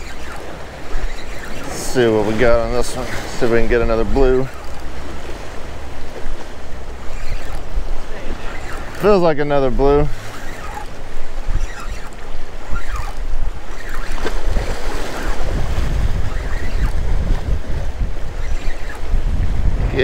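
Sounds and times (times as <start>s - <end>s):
waves washing against rocks: 0.0s - 18.4s
wind buffeting microphone: 0.0s - 20.0s.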